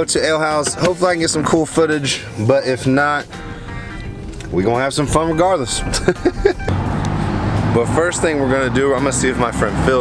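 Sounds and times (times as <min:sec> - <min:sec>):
street traffic noise: 0:02.1 - 0:10.0
low hum: 0:03.3 - 0:08.7.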